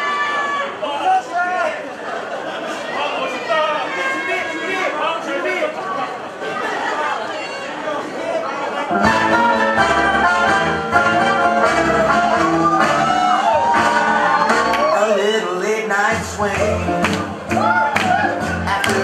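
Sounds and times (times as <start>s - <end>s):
audience chatter: 0.0s - 19.0s
swing song with singer: 8.9s - 19.0s.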